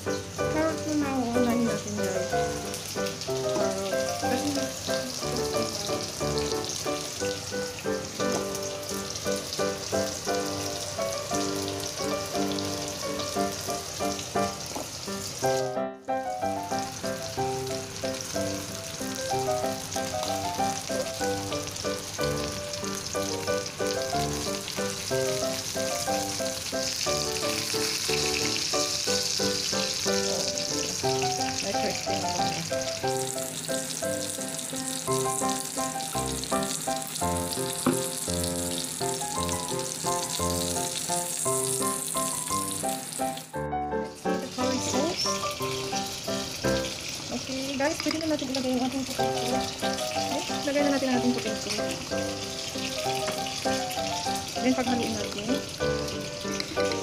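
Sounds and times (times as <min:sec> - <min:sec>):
background music with held notes: 0:00.0 - 0:47.2, 0:48.9 - 0:57.0
oil sizzling in a pan: 0:00.0 - 0:57.0.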